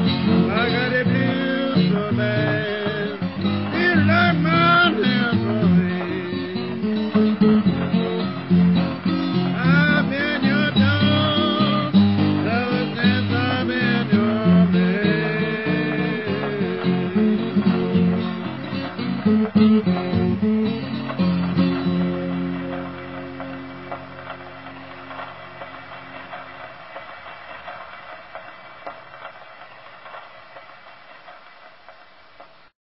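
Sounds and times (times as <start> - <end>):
fingerpicked acoustic guitar: 0.0 - 30.8.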